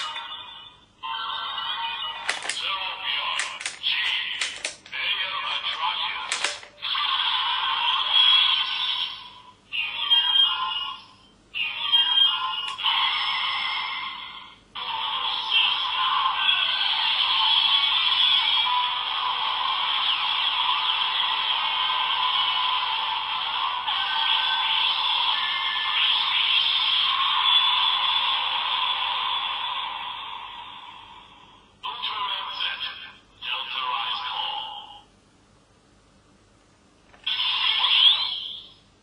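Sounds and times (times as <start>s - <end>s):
tinny toy sound effects and music: 0.0s - 35.1s, 37.1s - 38.9s.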